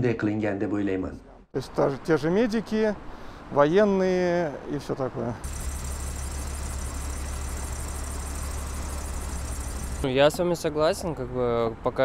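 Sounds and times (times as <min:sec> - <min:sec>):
street noise hiss: 0:01.6 - 0:12.0
bus engine idling: 0:05.4 - 0:10.2.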